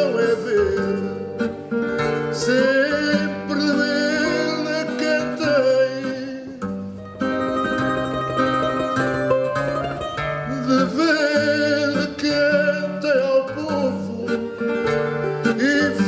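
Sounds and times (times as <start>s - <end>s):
man singing with vibrato: 0.0s - 7.0s, 10.4s - 16.0s
guitar bass line: 0.0s - 16.0s
guitar picking melody: 0.0s - 16.0s.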